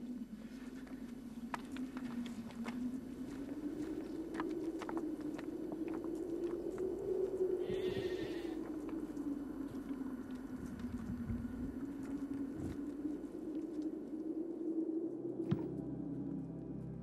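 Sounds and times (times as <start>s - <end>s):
footsteps on stony ground: 0.2s - 13.9s.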